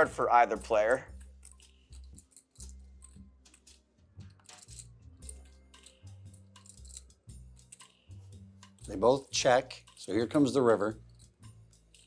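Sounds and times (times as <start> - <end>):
background music with bass line: 0.0 - 12.0
poker chips clicking: 1.1 - 9.2, 9.8 - 12.0.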